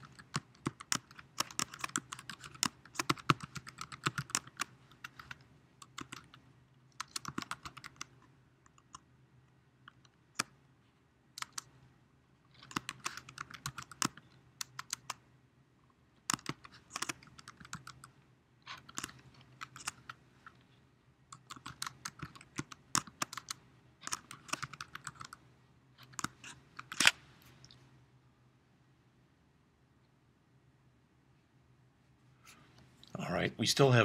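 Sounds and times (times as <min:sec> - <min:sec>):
keyboard typing clicks: 0:00.1 - 0:06.4, 0:16.3 - 0:18.1, 0:21.3 - 0:25.4.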